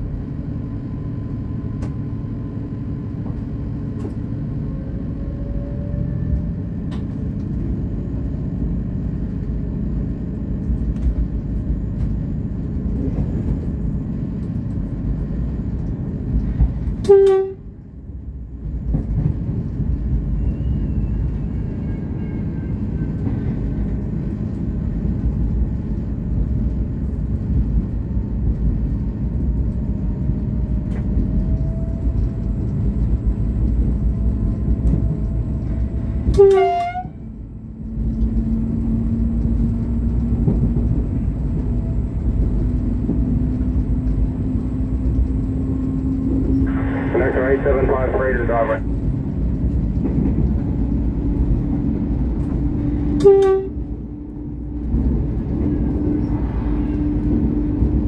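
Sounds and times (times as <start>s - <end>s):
diesel railcar rumbling: 0.0s - 58.0s
train horn blast: 17.0s - 17.7s, 36.3s - 37.2s, 53.2s - 53.8s.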